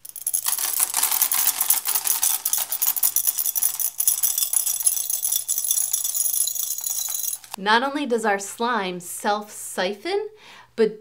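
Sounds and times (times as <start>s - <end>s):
beads clattering: 0.0s - 7.6s.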